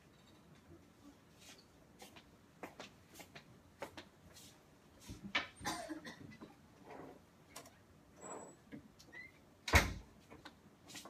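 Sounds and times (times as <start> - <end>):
soft faint noises: 0.0 - 11.0.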